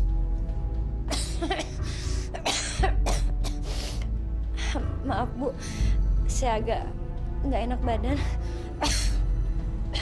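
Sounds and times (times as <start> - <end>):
background music with low drone: 0.0 - 10.0
person coughing: 1.1 - 1.8, 2.4 - 3.6.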